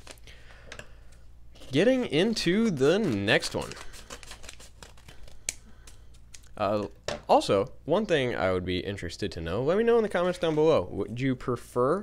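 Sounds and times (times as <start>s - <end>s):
paper crinkling: 0.0s - 0.4s, 1.6s - 6.6s.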